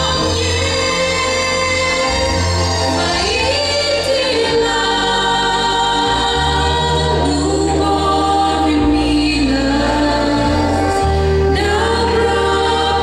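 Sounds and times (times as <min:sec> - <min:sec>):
low sustained bass notes: 0:00.0 - 0:13.0
vocal quartet singing in harmony: 0:00.0 - 0:13.0.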